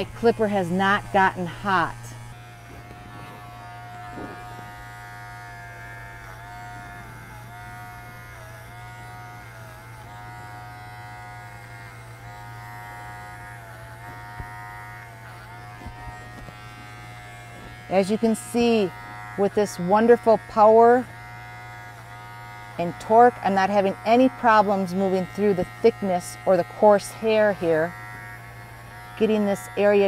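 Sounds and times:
horse clipper buzzing: 0.0s - 30.0s.

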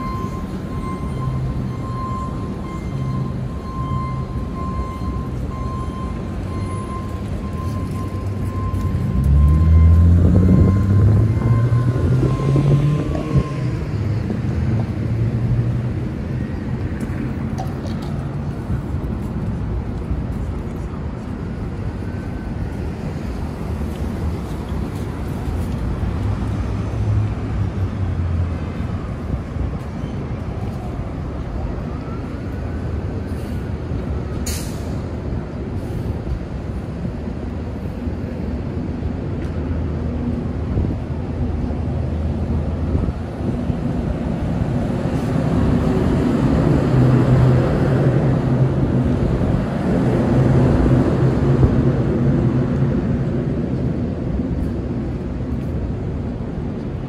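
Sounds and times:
heavy vehicle engine hum: 0.0s - 57.0s
passing traffic noise: 0.0s - 57.0s.

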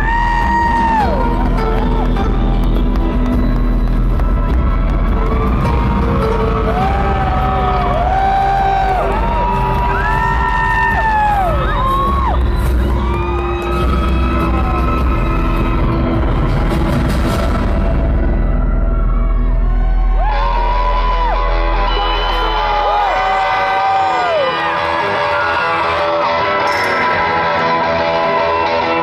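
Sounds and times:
electric guitar lead: 24.5s - 29.0s
rock band playing live: 24.5s - 29.0s.

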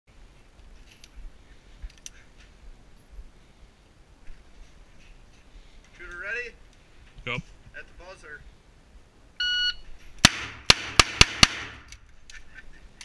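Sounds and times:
pistol handling clicks: 11.6s - 12.4s.

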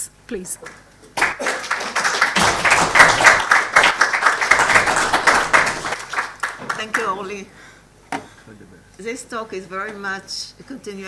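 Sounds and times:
audience applauding: 1.2s - 7.2s.

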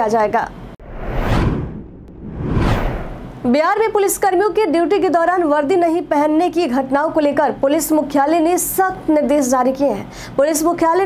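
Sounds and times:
whoosh sound effect: 0.8s - 3.4s.

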